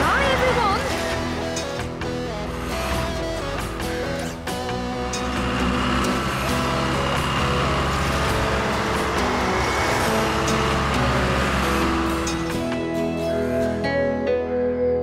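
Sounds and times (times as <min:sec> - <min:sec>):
backhoe engine running: 0:00.0 - 0:13.6
background music: 0:00.0 - 0:15.0.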